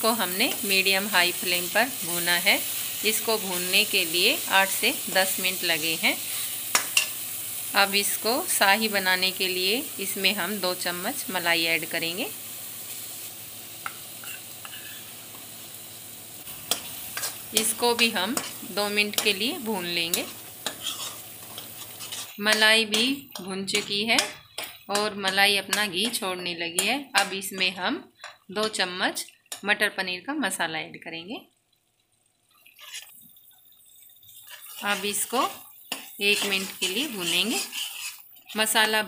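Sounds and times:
paste frying hiss: 0.0 - 28.5, 32.5 - 39.0
sauce sizzling in oil: 0.0 - 39.0
steel spoon scraping: 14.2 - 15.1, 16.6 - 25.1, 32.7 - 33.2, 34.4 - 39.0.

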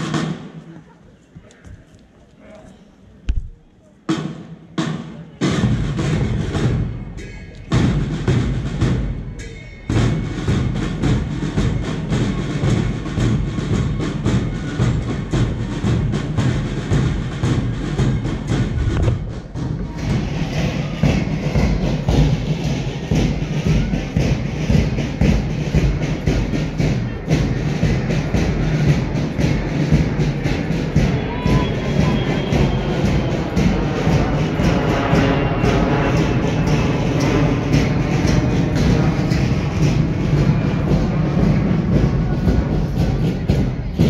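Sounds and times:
steady drum beat: 3.3 - 44.0
marching music: 4.1 - 44.0.

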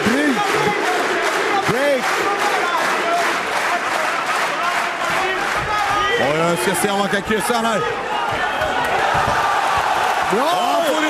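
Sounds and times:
crowd din of voices: 0.0 - 11.0.

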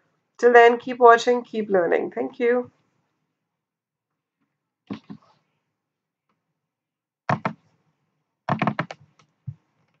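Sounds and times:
sharp computer clicks: 7.3 - 7.6, 8.5 - 9.0.

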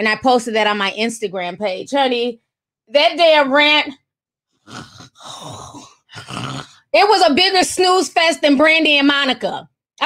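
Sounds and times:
woman's breathy exasperated sounds: 4.7 - 6.9.

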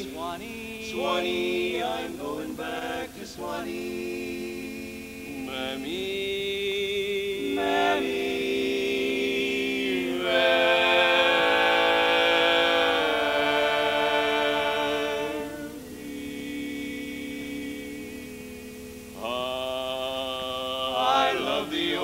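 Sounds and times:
male a cappella quartet singing: 0.0 - 22.0.

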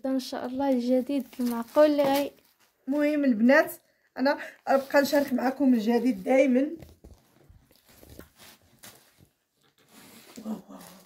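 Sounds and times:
fabric rustling: 0.2 - 3.4, 4.6 - 11.0.

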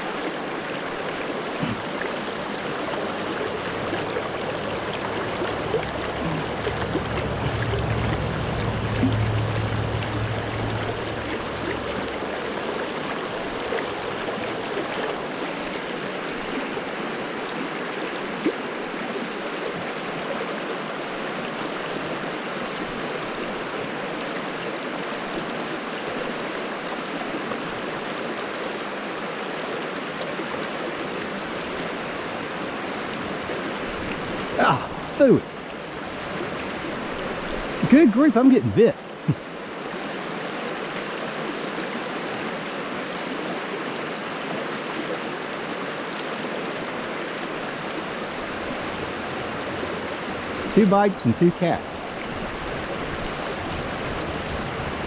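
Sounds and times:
creek running over stones: 0.0 - 55.0
low rumble: 3.7 - 12.8.

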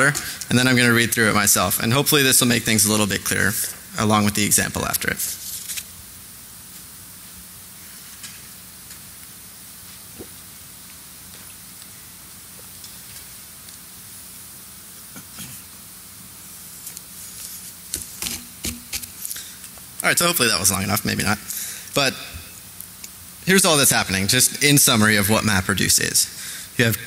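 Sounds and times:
microphone hiss: 0.0 - 27.0.

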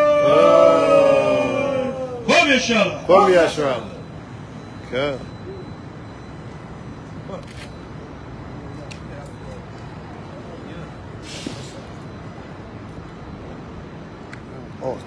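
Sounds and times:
person shouting: 0.0 - 2.5
traffic rumble: 0.0 - 15.0
brief hiss: 11.2 - 11.9.

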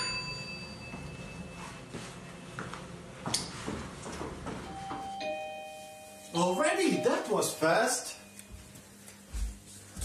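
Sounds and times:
two-note doorbell chime: 0.0 - 1.9, 4.6 - 8.8
person speaking: 6.3 - 8.5.

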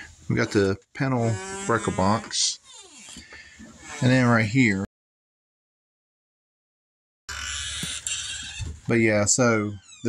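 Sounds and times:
man speaking: 0.0 - 2.6, 4.0 - 4.9, 8.9 - 9.8.

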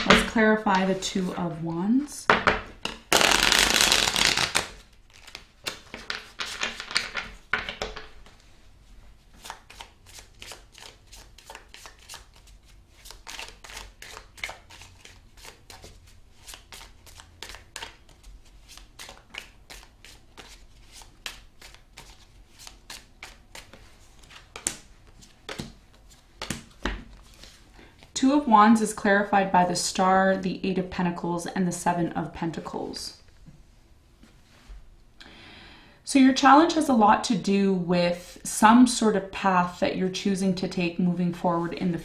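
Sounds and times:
cards riffle-shuffled: 2.9 - 7.4, 9.4 - 28.1.

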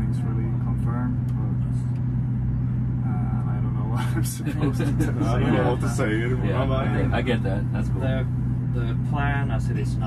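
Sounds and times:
low rumble: 0.0 - 10.0
steady low hum: 0.0 - 10.0.

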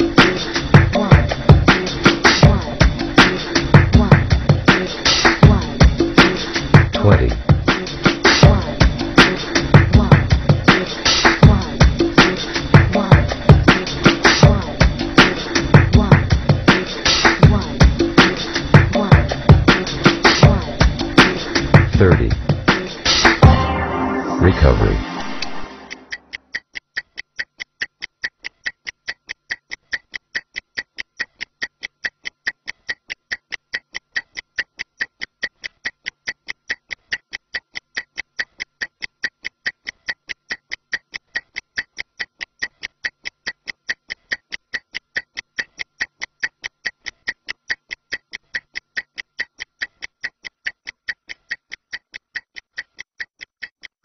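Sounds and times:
stopwatch ticking: 0.0 - 23.4, 25.7 - 54.0.

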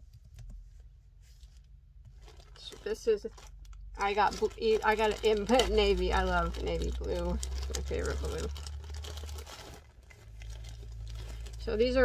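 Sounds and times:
plastic bag crinkling and tearing: 2.1 - 12.0.

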